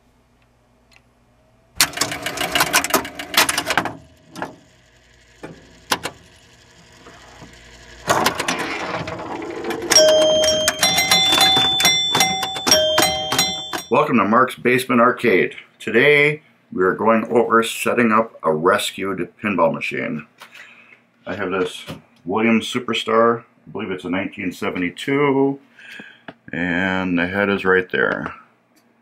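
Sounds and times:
mechanical clatter: 1.8s - 13.9s
pinball chime tones: 8.5s - 14.0s.

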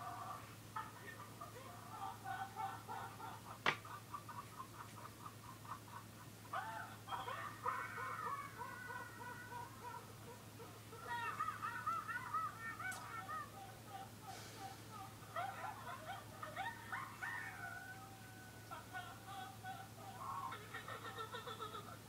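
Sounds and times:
person laughing through speakers: 0.0s - 17.5s, 18.7s - 22.0s
steady low hum: 0.0s - 22.0s.

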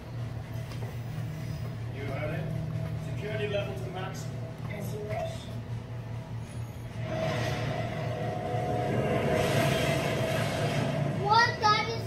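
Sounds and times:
low rumble: 0.2s - 12.0s.

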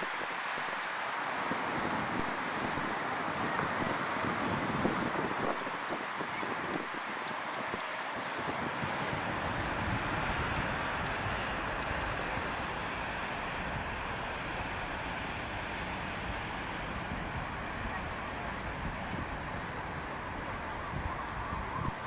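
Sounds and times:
steady city traffic: 0.0s - 22.0s.

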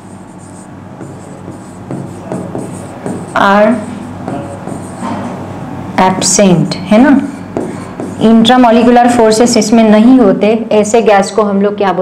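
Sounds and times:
marker scratching on board: 0.0s - 5.1s, 7.6s - 9.0s
steady low hum: 0.0s - 12.0s
faint marker taps: 1.0s - 3.4s, 7.6s - 8.2s.

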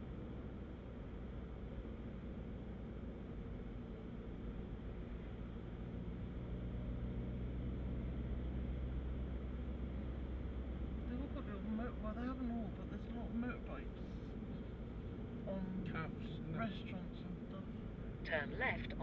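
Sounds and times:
car engine hum: 0.0s - 19.0s
road noise: 0.0s - 19.0s.

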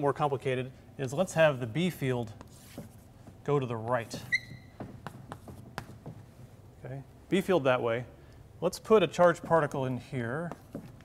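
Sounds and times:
chalk tapping and scratching: 2.2s - 6.2s, 10.4s - 11.0s
chalk squeaking on chalkboard: 4.0s - 5.7s.

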